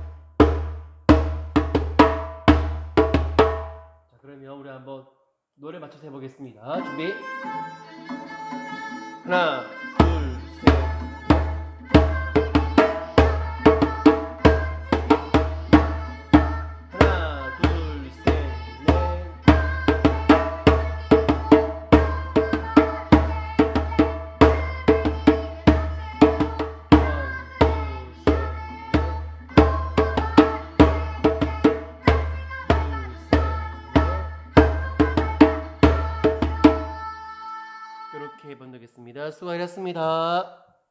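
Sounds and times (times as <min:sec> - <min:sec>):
recorded song accompaniment: 0:06.6 - 0:40.7.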